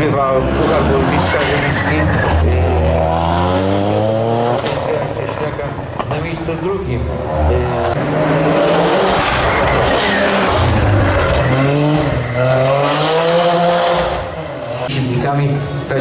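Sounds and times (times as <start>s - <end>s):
car engine revving past: 0.0s - 5.0s, 7.0s - 14.9s.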